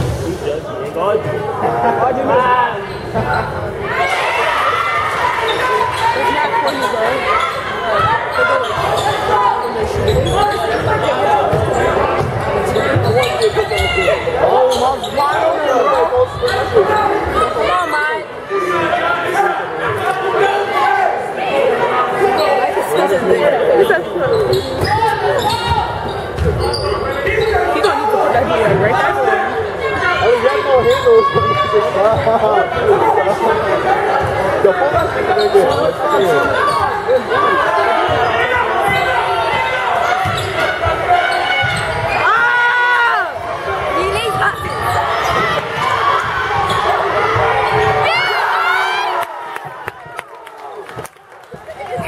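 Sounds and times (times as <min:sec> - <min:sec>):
spectators talking and calling: 0:00.0 - 0:52.0.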